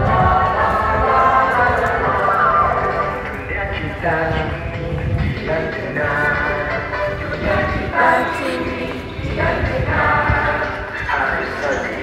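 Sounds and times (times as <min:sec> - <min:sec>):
girls singing together: 0:00.0 - 0:03.0, 0:07.4 - 0:11.0.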